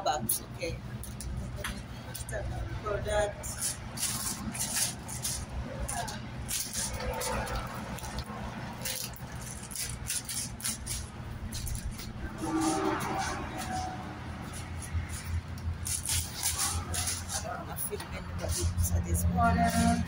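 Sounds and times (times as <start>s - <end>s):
indistinct voices: 0.0s - 10.0s, 11.0s - 20.0s
steady low hum: 0.0s - 20.0s.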